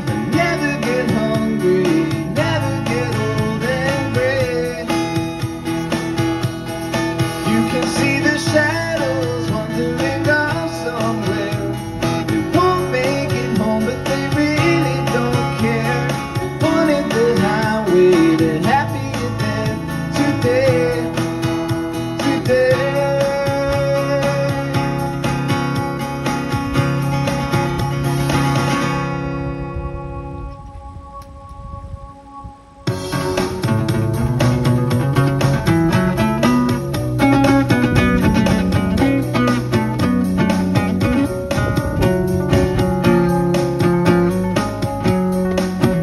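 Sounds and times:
man singing: 0.0 - 6.0, 7.3 - 25.8
acoustic guitar strumming: 0.0 - 46.0.

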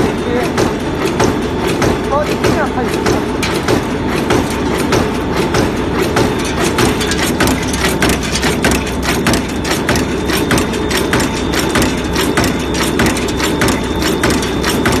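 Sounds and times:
forging machine metal blows: 0.0 - 15.0
steady mechanical hum: 0.0 - 15.0.

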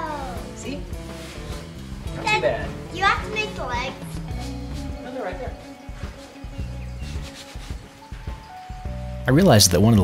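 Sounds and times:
soft background music: 0.0 - 10.0
hand rubbing upholstered seat: 5.9 - 8.2.

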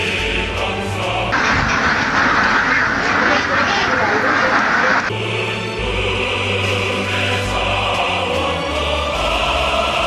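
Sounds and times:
ducks quacking: 1.4 - 5.1.

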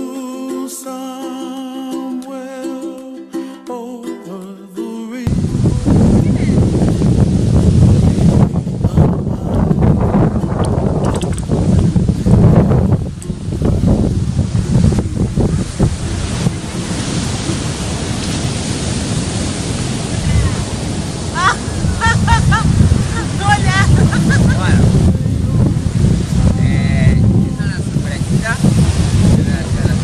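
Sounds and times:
surf breaking on beach: 5.3 - 30.0
wind buffeting microphone: 5.3 - 30.0.

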